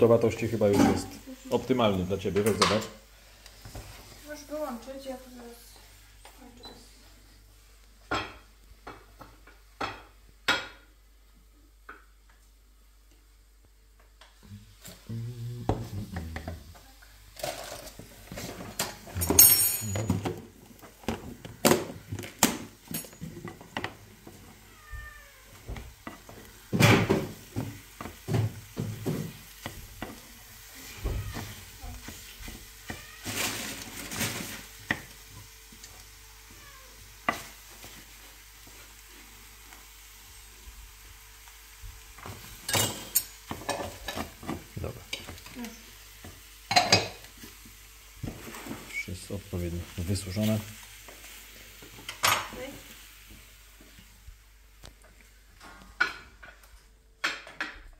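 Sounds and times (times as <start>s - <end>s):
eggs sizzling: 0.0s - 57.8s
cat meowing: 24.6s - 25.7s, 30.8s - 31.7s, 32.9s - 33.5s, 36.4s - 37.1s.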